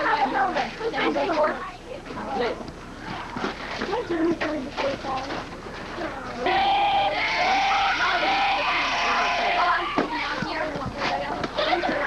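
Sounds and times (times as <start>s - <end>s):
children and adults talking: 0.0s - 12.0s.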